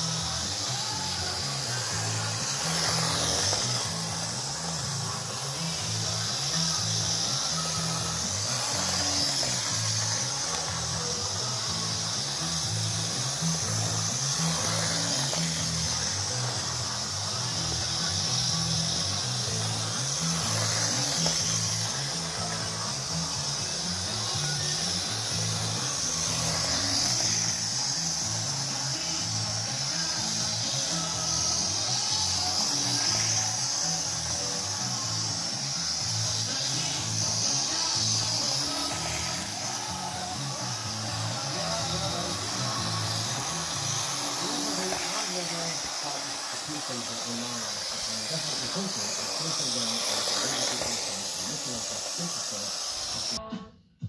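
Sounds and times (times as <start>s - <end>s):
model train motor whirring: 0.0s - 53.4s
radio music: 0.0s - 54.0s.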